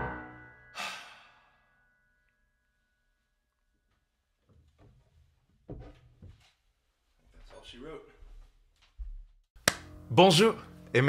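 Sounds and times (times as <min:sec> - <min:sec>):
piano chord ringing: 0:00.0 - 0:02.7
person sighing: 0:00.8 - 0:01.6.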